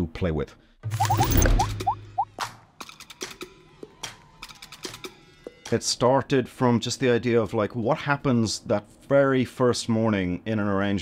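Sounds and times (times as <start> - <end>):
quick rising blips: 1.0 - 2.2.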